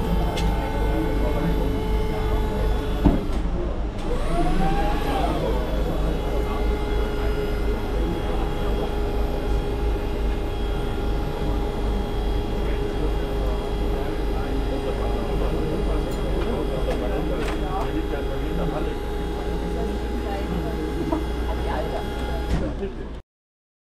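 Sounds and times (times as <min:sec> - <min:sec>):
steady mechanical hum: 0:00.0 - 0:23.2.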